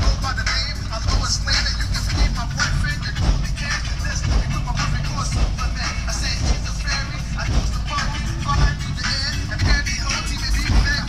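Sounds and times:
hip-hop music with heavy bass: 0.0 - 11.0
vocals over beat: 0.0 - 11.0.

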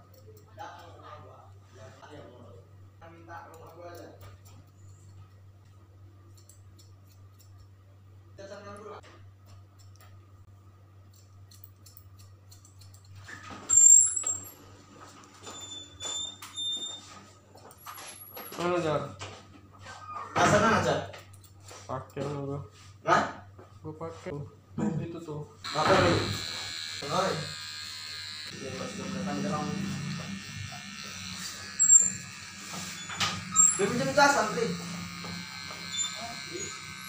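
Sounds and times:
scissors snipping hair: 6.3 - 7.7, 11.0 - 13.2, 29.7 - 37.0
high-pitched squeak: 13.3 - 14.6, 15.4 - 17.2, 31.0 - 37.0
electric hair clipper buzzing: 25.6 - 37.0.

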